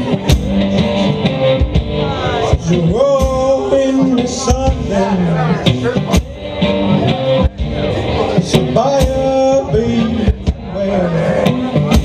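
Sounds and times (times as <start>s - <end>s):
electric guitar playing: 0.0s - 12.0s.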